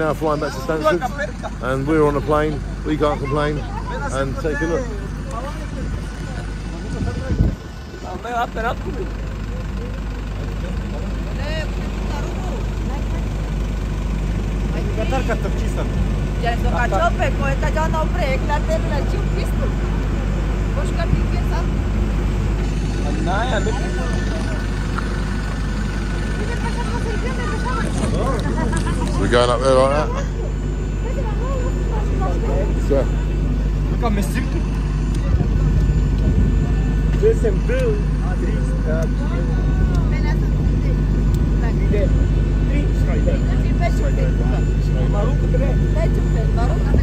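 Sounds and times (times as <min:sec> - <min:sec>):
people talking: 0:00.0 - 0:13.6, 0:14.7 - 0:20.0, 0:20.6 - 0:21.8, 0:22.8 - 0:47.0
engines idling: 0:00.0 - 0:47.0.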